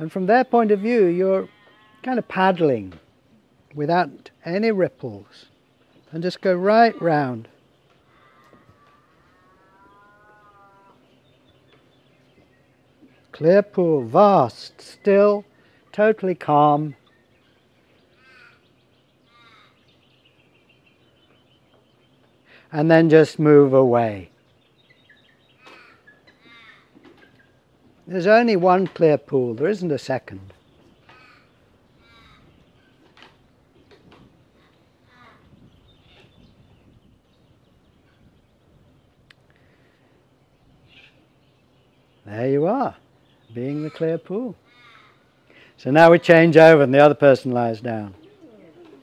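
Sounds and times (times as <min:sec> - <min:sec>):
faint long drawn-out call: 0:01.2 - 0:02.6, 0:06.6 - 0:11.2, 0:18.0 - 0:20.0, 0:25.5 - 0:27.0, 0:43.6 - 0:45.8
crow cawing: 0:08.0 - 0:11.0, 0:18.2 - 0:19.8, 0:25.6 - 0:27.1, 0:31.0 - 0:32.6, 0:43.7 - 0:45.4.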